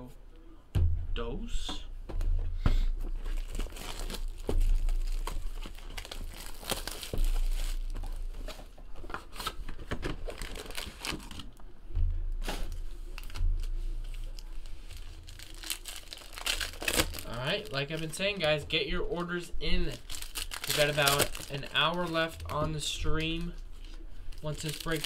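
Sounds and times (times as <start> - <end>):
foil packs crinkling and tearing: 3.2 - 8.5, 9.2 - 11.6, 13.2 - 25.0.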